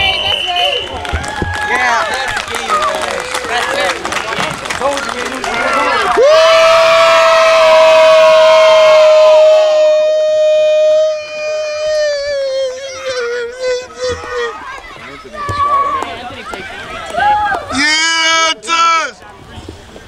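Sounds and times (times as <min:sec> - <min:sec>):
people shouting: 0:05.6 - 0:16.0.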